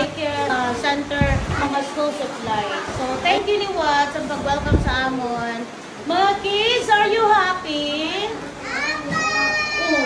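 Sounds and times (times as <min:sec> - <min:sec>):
young children's voices: 0:08.3 - 0:10.0
child's high drawn-out call: 0:08.6 - 0:10.0.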